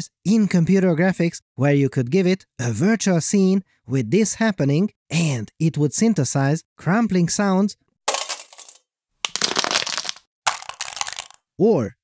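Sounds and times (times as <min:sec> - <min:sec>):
plastic bottle crinkling: 0:09.3 - 0:11.4.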